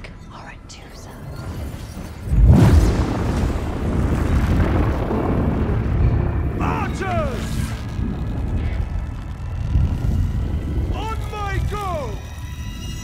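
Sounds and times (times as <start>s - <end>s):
deep boom with low rumble: 2.3s - 11.0s.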